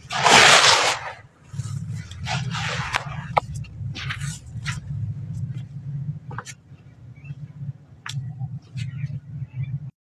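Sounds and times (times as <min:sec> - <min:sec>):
low rumble: 0:00.0 - 0:10.0.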